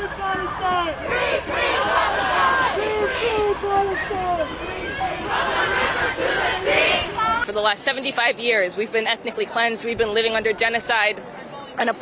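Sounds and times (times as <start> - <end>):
crowd chanting and shouting: 0.0 - 8.9.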